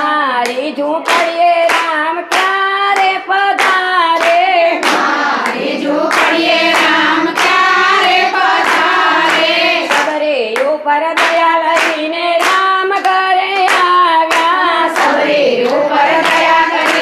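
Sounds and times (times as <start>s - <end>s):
rhythmic hand clapping: 0.0s - 17.0s
women singing in unison: 0.0s - 17.0s.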